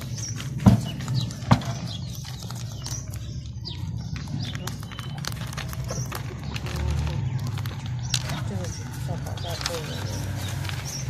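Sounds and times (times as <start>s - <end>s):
rabbits crunching vegetables: 0.0s - 11.0s.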